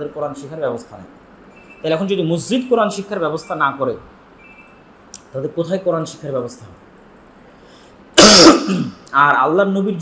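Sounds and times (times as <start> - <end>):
man clearing his throat: 8.2 - 9.0.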